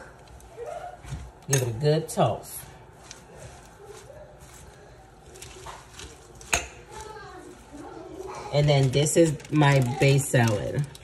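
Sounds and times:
lettuce leaves rustling in a bowl: 0.0s - 11.0s.

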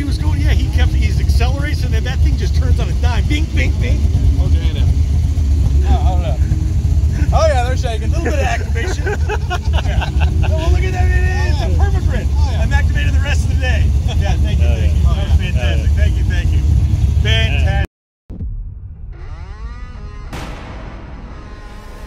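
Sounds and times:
men laughing and talking: 0.0s - 17.9s
heavy low rumble: 0.0s - 22.0s.

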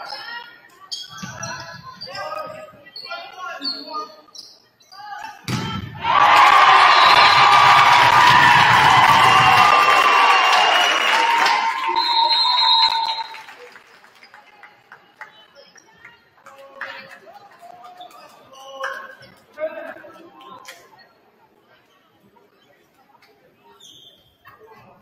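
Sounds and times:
volleyball hits: 5.4s - 9.8s
crowd cheering: 5.9s - 15.0s.

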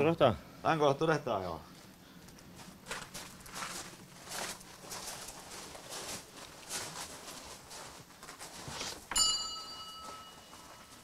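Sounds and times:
small metal bell ringing: 9.1s - 11.0s.

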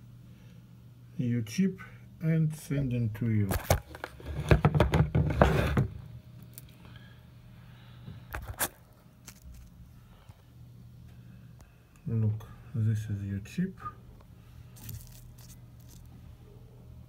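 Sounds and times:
foam and cardboard rustling: 14.8s - 16.1s.

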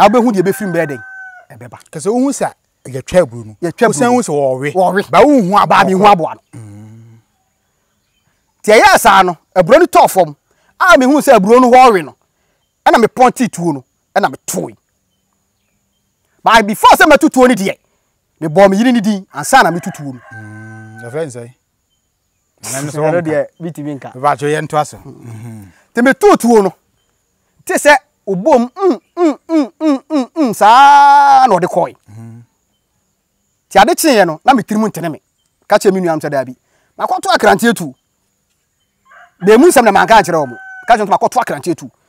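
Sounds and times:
man speaking: 0.0s - 7.2s, 8.6s - 12.2s, 12.9s - 14.8s, 16.4s - 17.8s, 18.4s - 21.6s, 22.6s - 26.8s, 27.6s - 32.5s, 33.7s - 38.0s, 39.4s - 42.0s
man humming: 5.8s - 7.3s, 20.3s - 21.0s, 25.0s - 25.8s, 28.8s - 30.5s, 32.0s - 32.5s.

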